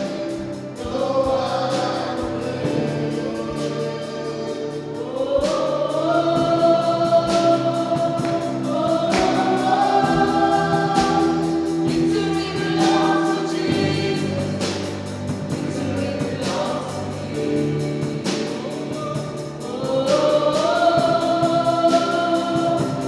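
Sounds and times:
band playing: 0:00.0 - 0:23.0
women singing: 0:00.0 - 0:23.0.

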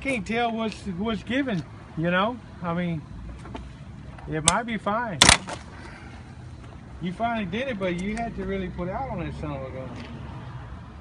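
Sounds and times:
loud sharp crack: 0:05.2 - 0:05.7.

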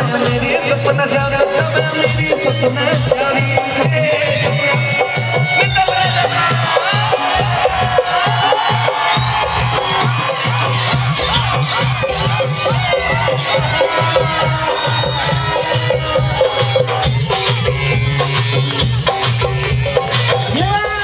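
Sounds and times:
crowd cheering and shouting: 0:00.0 - 0:21.0
folk band playing: 0:00.0 - 0:21.0.

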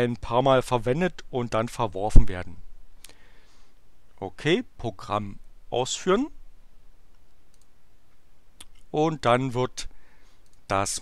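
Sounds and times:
computer mouse clicking: 0:07.5 - 0:07.7, 0:10.4 - 0:10.7.

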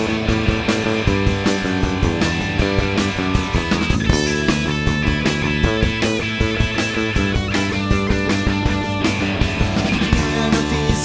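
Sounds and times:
bass guitar: 0:00.0 - 0:11.0
drums on steady beat: 0:00.0 - 0:11.0
electric guitar: 0:00.0 - 0:11.0.

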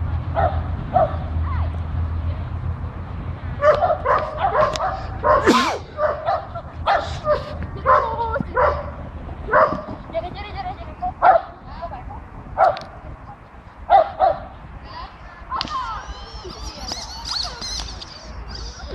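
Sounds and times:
dog barking: 0:00.4 - 0:01.2, 0:03.6 - 0:09.9, 0:11.2 - 0:11.5, 0:13.9 - 0:14.5.

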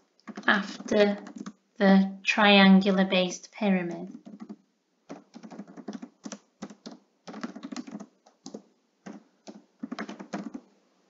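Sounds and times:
typing on computer keyboard: 0:00.2 - 0:01.6, 0:04.1 - 0:10.7.

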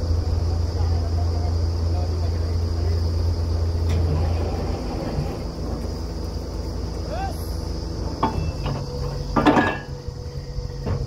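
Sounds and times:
drilling rig engine running: 0:00.0 - 0:11.0
metal clanks: 0:08.0 - 0:11.0.

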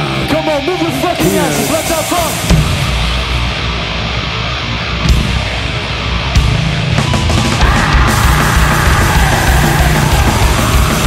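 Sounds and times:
bass guitar: 0:00.0 - 0:11.0
drums: 0:00.0 - 0:11.0
heavy distorted guitars: 0:00.0 - 0:11.0.

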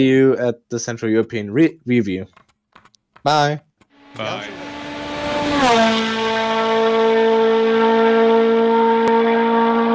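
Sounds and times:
loud sustained droning tone: 0:04.0 - 0:09.9.

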